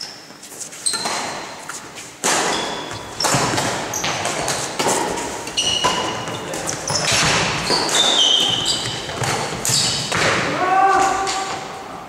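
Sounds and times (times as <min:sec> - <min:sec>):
player crying out: 0:10.5 - 0:11.6.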